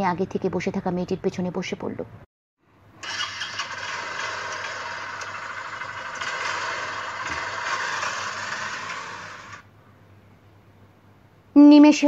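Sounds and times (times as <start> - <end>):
motorcycle engine pulling away: 3.0 - 9.7.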